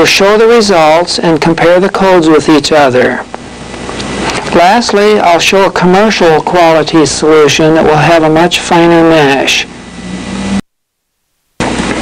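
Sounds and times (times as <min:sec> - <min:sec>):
background hiss with low hum: 0:00.0 - 0:12.0.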